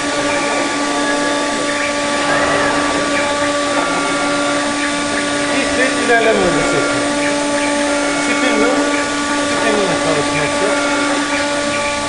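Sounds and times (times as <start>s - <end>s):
router spindle whine: 0.0s - 12.0s.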